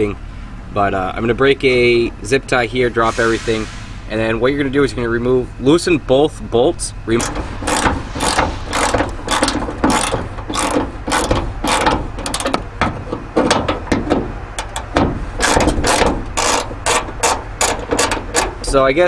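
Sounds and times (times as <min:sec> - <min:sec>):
socket ratchet clicking: 0:07.2 - 0:18.6.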